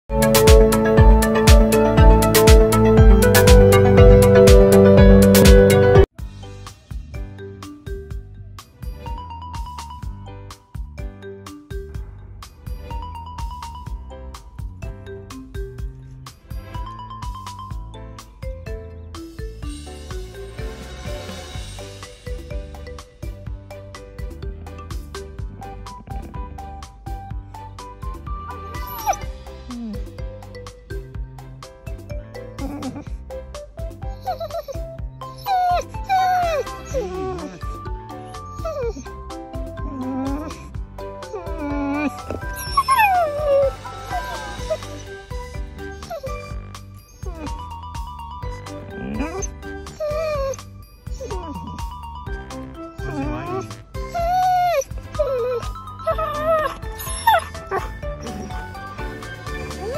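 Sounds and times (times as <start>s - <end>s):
background music with steady beat: 0.1s - 59.9s
dog whining: 25.6s - 26.7s, 28.3s - 30.4s, 32.3s - 33.2s, 34.0s - 59.9s.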